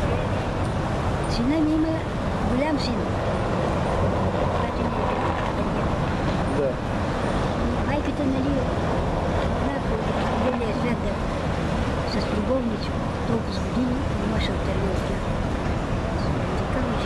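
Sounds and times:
passing traffic rumble: 0.0 - 17.0.

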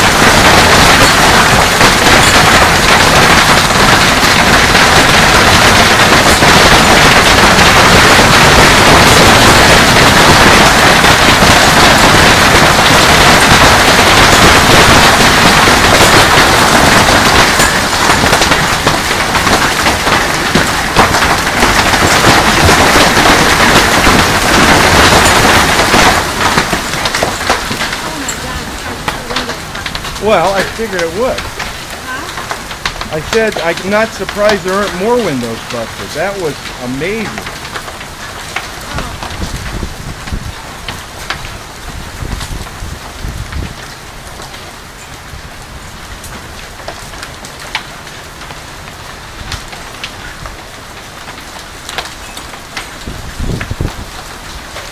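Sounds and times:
hail pelting pool and concrete: 0.0 - 54.9.

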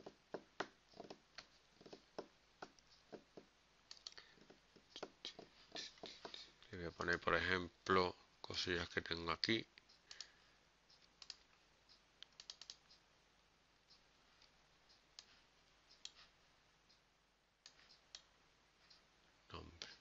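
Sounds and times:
faint mouse clicks: 3.9 - 6.4, 9.8 - 11.6, 12.2 - 13.0.

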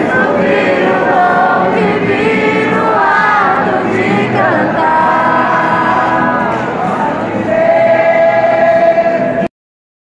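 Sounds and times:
acoustic guitars: 0.0 - 9.5
congregation singing a hymn: 0.0 - 9.5.

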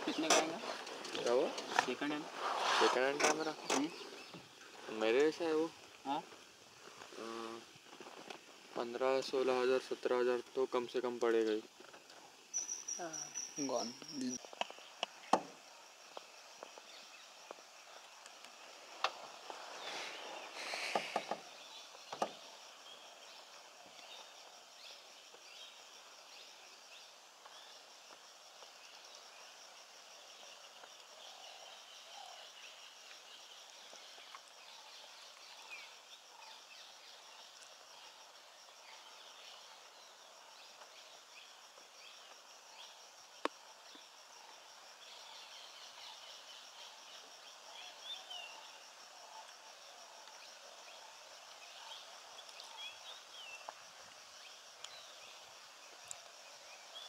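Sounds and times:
high insect chorus: 0.0 - 57.0
distant bird chirps: 12.5 - 15.5, 19.0 - 24.4.

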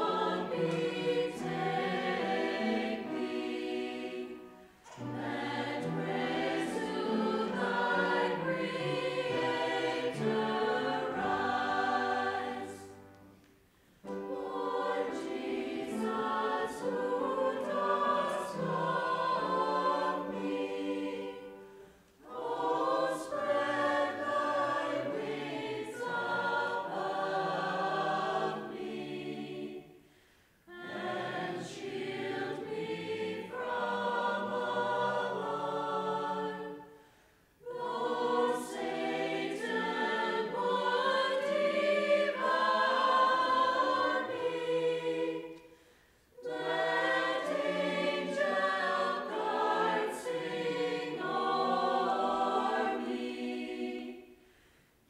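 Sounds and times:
church choir singing a hymn: 0.0 - 55.0.

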